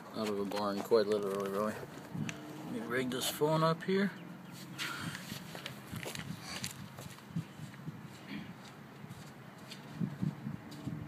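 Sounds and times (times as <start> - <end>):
footsteps on concrete: 0.0 - 2.5, 4.6 - 11.0.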